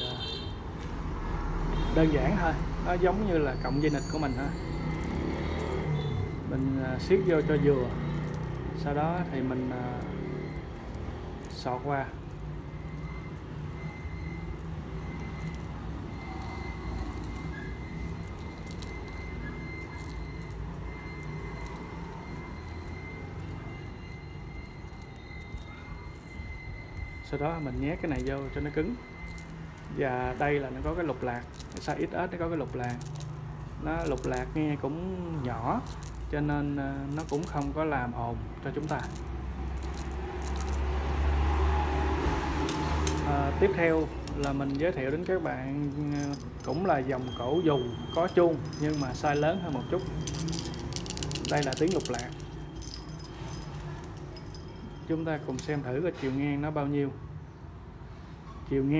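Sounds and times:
collar bell clinking: 0:02.5 - 0:55.9.

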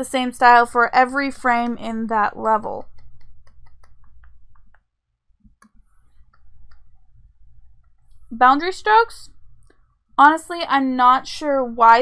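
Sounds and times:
computer mouse clicks: 0:02.8 - 0:04.8.

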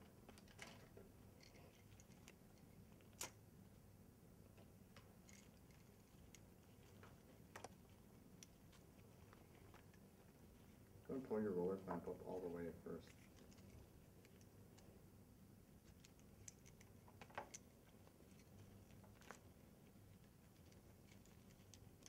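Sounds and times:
plastic tubing clicks and rustles: 0:00.0 - 0:03.4, 0:04.5 - 0:10.7, 0:15.8 - 0:22.0
low room hum: 0:00.0 - 0:22.0.

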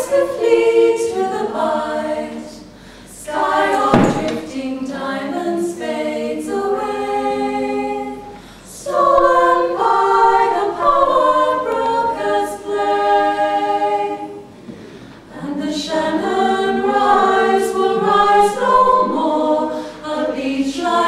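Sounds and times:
mixed choir singing: 0:00.0 - 0:21.0
singers breathing: 0:02.6 - 0:03.2, 0:08.3 - 0:08.8, 0:14.5 - 0:15.3, 0:19.6 - 0:20.1
low thump: 0:03.8 - 0:04.6.

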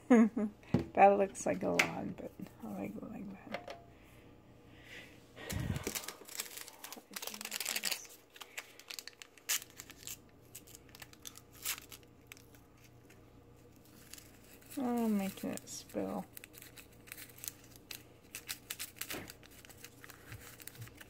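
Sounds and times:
paper packet tearing and crinkling: 0:05.5 - 0:12.9, 0:13.8 - 0:21.0.

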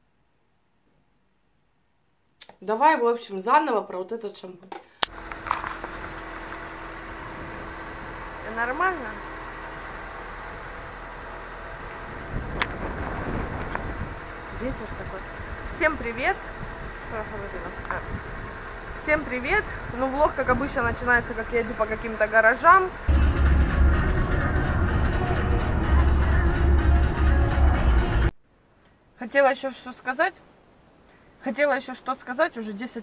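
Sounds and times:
road noise: 0:05.0 - 0:28.4
car engine running: 0:05.1 - 0:28.3
wind buffeting microphone: 0:07.0 - 0:08.2, 0:11.8 - 0:22.3
music with heavy bass beat: 0:23.1 - 0:28.3.

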